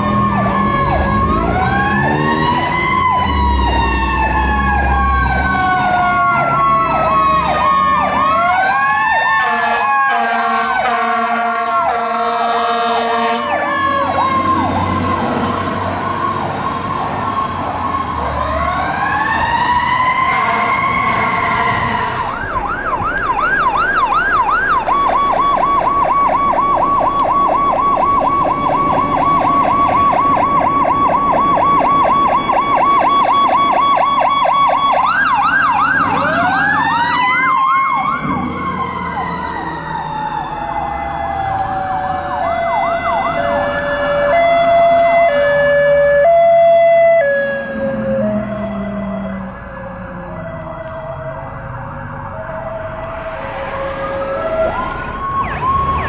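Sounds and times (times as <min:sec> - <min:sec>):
fire engine sirens: 0:00.0 - 0:56.0
air horn blasts: 0:09.4 - 0:13.7, 0:20.3 - 0:22.4.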